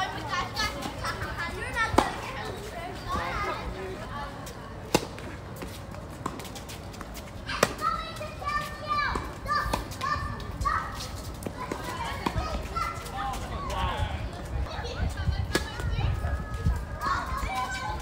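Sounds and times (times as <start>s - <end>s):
voices chattering: 0.0s - 18.0s
tennis balls struck by rackets: 4.8s - 7.9s.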